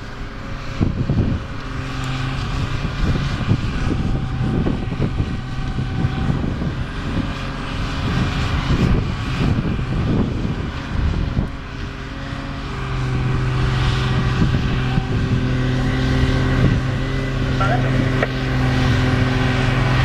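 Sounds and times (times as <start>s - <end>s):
diesel engine running under load: 0.0s - 20.0s.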